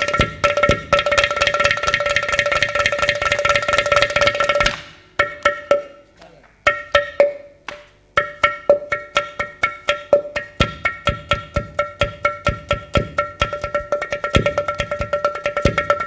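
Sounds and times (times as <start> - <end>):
mridangam and ghatam strokes: 0.0 - 16.0.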